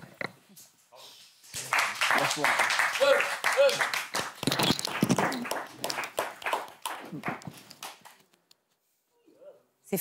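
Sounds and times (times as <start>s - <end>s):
people applauding: 1.5s - 8.2s.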